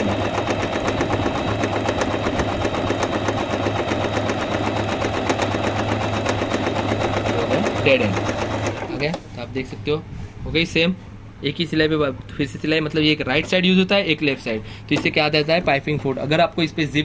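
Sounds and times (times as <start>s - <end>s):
sewing machine stitching: 0.0s - 9.2s.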